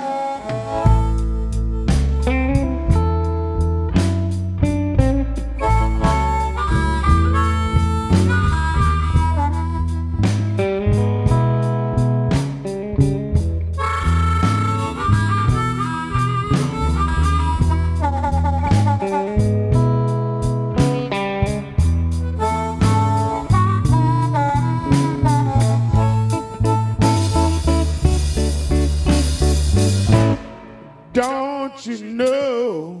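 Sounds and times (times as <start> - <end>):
electric guitar: 0.0 - 31.2
bass guitar: 0.0 - 32.4
harmonica through microphone: 0.0 - 32.8
drums keeping steady beat: 0.5 - 32.6.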